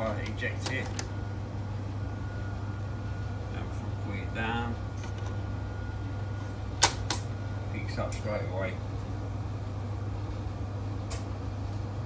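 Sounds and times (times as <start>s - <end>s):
boombox hum: 0.0s - 12.0s
cd ejecting clicks: 0.2s - 1.2s, 6.8s - 7.3s.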